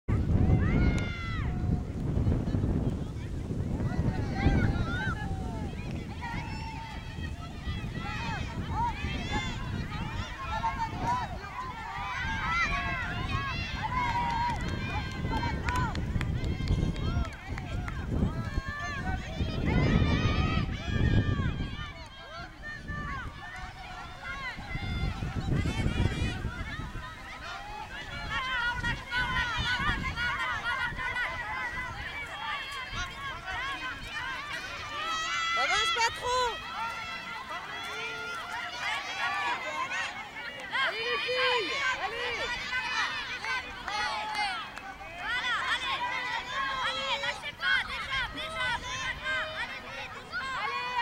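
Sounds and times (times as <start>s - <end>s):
children shouting and cheering: 0.1s - 51.0s
hooves cantering on grass: 0.1s - 51.0s.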